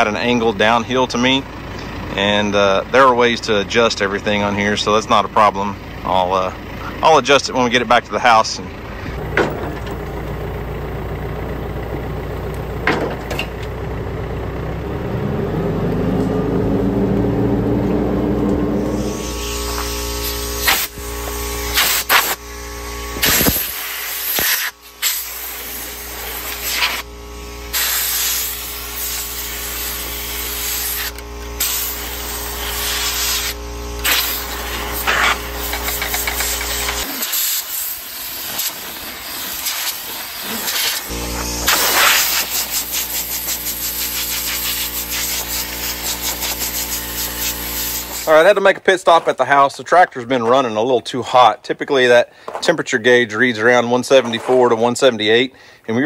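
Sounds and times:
tractor engine running: 0:00.0 - 0:54.5
steady hum: 0:16.4 - 0:48.6
air blow gun hissing: 0:18.7 - 0:48.5.

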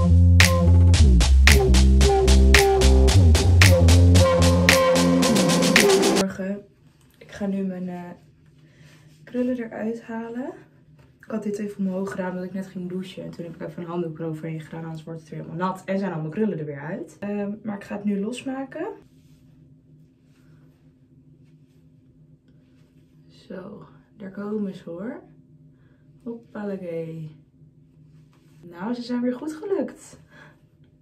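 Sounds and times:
background music: 0:00.0 - 0:06.2
low steady hum: 0:06.2 - 0:31.0
faint rustling of hair and cord: 0:06.6 - 0:12.6, 0:19.0 - 0:23.5, 0:27.8 - 0:28.8.

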